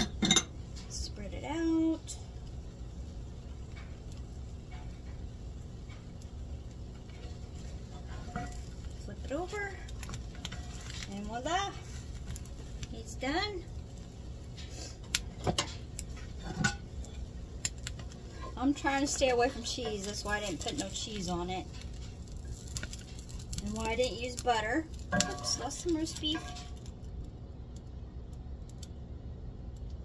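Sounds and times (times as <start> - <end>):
kitchen utensils clinking: 0.0 - 0.5, 8.0 - 8.7, 23.7 - 26.8
low steady hum: 0.0 - 30.0.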